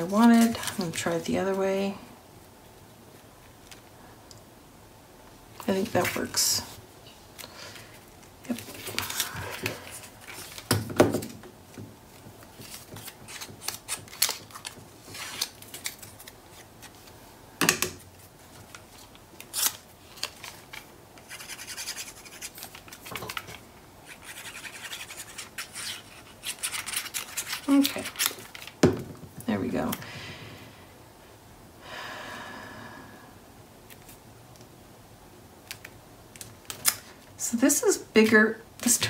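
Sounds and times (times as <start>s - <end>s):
paper rustling: 7.8s - 17.2s.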